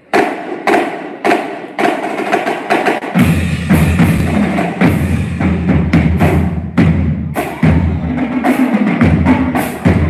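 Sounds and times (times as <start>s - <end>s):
snare drum: 0.0s - 10.0s
tenor drums: 0.0s - 10.0s
bass drum: 3.1s - 10.0s.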